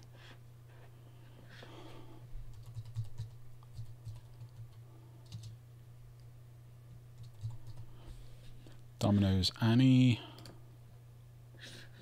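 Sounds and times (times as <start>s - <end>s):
computer keyboard typing: 2.5s - 5.6s, 7.2s - 7.9s.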